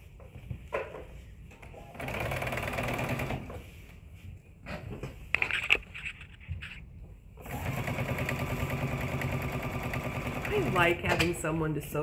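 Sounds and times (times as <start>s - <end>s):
electric sewing machine stitching: 1.9s - 3.5s, 7.4s - 11.0s.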